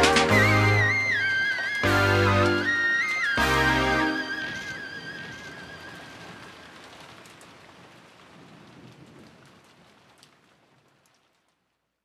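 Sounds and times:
pop song noisy wash: 0:00.0 - 0:06.2.

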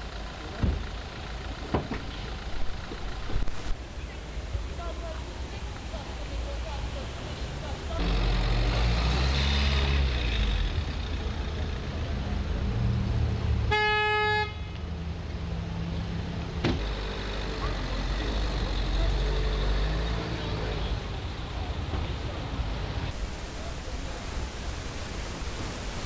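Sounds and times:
faint voices: 0:00.0 - 0:08.5, 0:16.8 - 0:25.8
vehicle engine running: 0:00.0 - 0:09.0, 0:16.0 - 0:24.2
street traffic: 0:00.0 - 0:26.0
car horn honk: 0:13.7 - 0:14.7.

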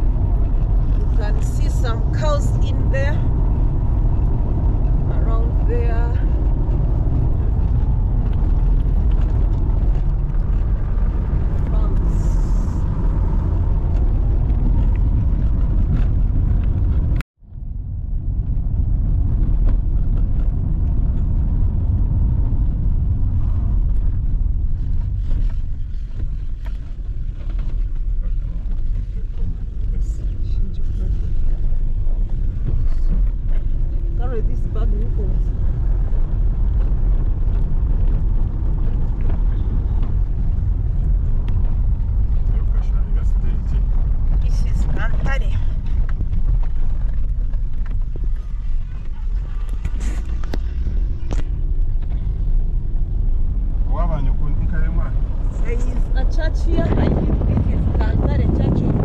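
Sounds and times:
car road noise rumble: 0:00.0 - 0:59.0.

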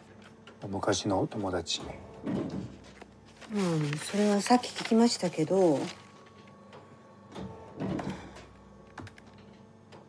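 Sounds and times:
papers being handled: 0:02.8 - 0:06.7.

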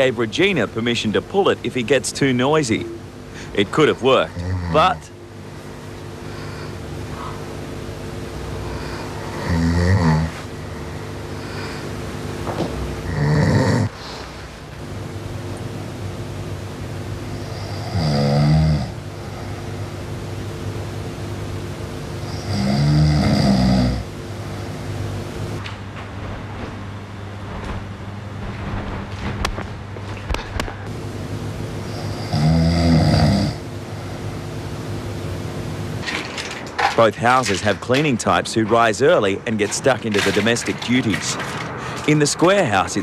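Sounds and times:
steady hum: 0:00.0 - 0:43.0
man snoring: 0:04.2 - 0:05.1, 0:08.6 - 0:11.9, 0:13.0 - 0:14.2, 0:17.2 - 0:19.9, 0:22.2 - 0:24.8, 0:31.8 - 0:34.2.

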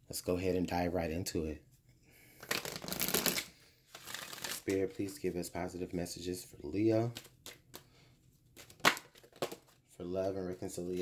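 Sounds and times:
cards being shuffled: 0:02.4 - 0:05.2, 0:07.0 - 0:07.9, 0:08.5 - 0:09.8.

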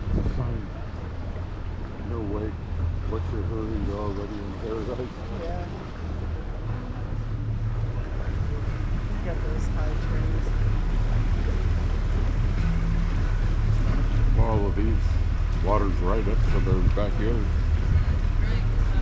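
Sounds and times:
wind noise on microphone: 0:00.0 - 0:03.1, 0:05.3 - 0:19.0
motorboat engine humming: 0:00.0 - 0:19.0.

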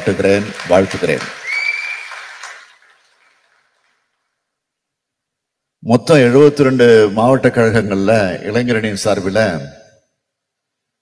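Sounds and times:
soft hiss in a hall: 0:00.0 - 0:11.0.

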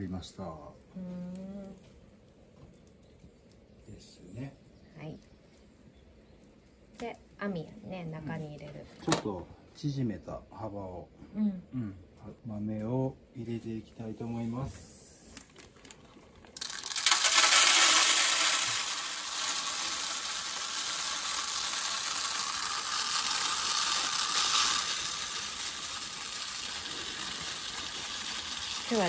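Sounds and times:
coffee beans pouring into drum: 0:14.6 - 0:29.0.

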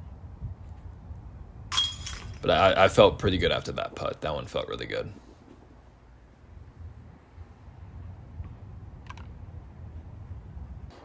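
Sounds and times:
wind rumble on microphone: 0:00.0 - 0:11.0
disc golf chains jangling: 0:01.7 - 0:02.6.

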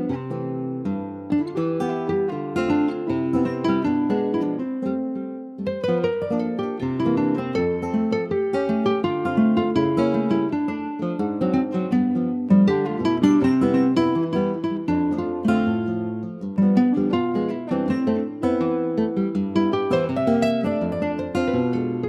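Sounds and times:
calypso-style guitar tune: 0:00.0 - 0:22.0.

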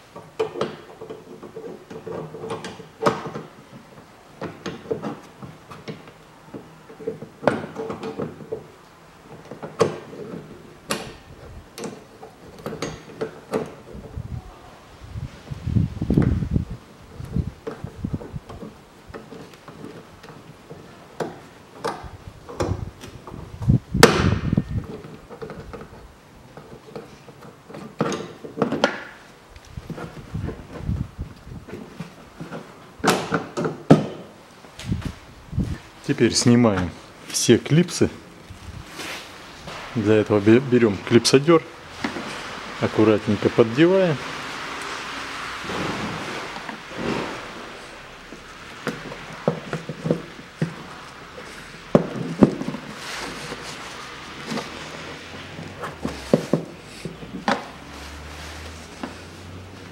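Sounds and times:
metallic clicks and knocks: 0:09.3 - 0:14.1.

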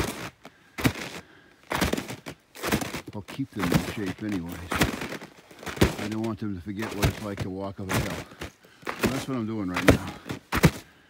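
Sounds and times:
footsteps crunching in snow: 0:00.0 - 0:11.0.

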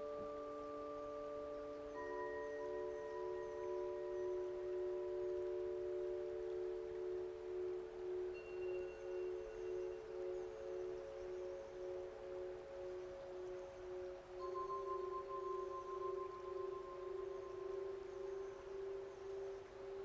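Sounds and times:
ambient music of singing bowls: 0:00.0 - 0:20.0.

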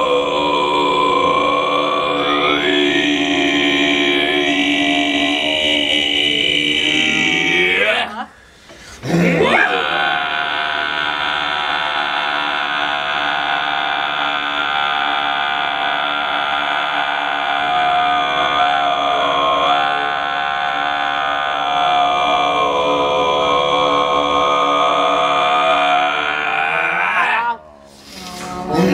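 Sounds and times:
men chanting drone notes: 0:00.0 - 0:08.4, 0:09.0 - 0:27.9.

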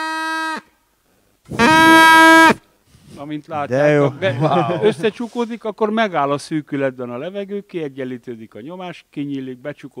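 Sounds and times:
drinking straw reed pipe notes: 0:01.5 - 0:02.6.

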